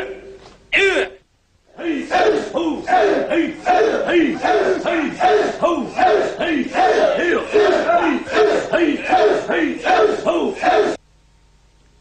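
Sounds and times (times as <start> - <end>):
group shouting in rhythm: 0.8 - 11.0.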